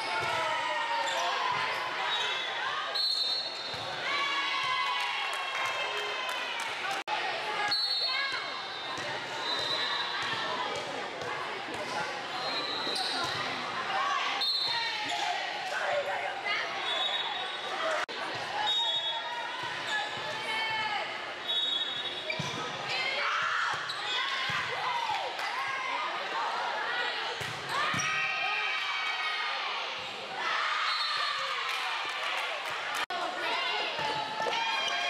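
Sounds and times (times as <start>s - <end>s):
voices echoing in a gym: 0.0s - 35.0s.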